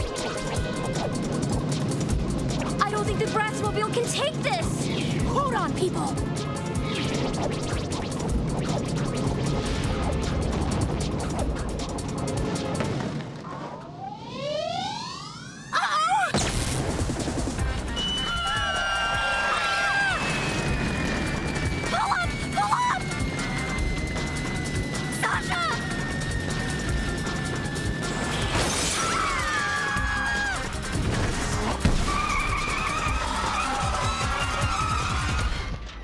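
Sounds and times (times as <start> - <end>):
cartoon action music: 0.0 - 12.8, 14.2 - 36.0
rising whistling glides: 13.5 - 15.7, 17.9 - 30.6
long falling whistle: 17.9 - 30.6.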